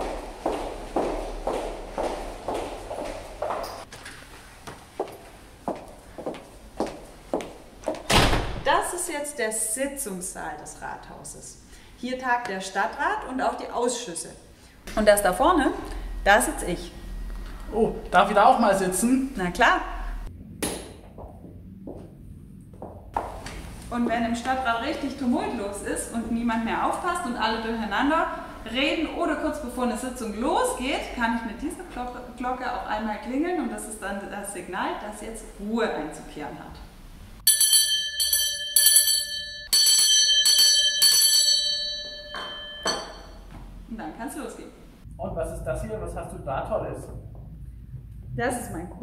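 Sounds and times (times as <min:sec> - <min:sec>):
brass hand bell ringing: 0:37.4 - 0:43.4.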